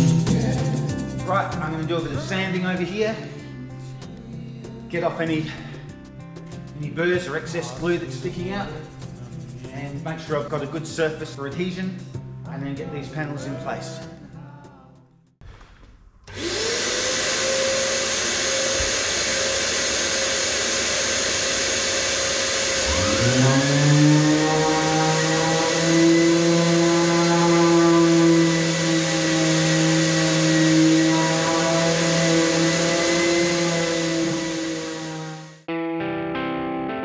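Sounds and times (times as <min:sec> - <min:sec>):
orbital sander sanding: 0:00.0 - 0:03.4, 0:07.0 - 0:11.4, 0:16.3 - 0:35.7
shop vacuum motor whine: 0:16.2 - 0:35.7.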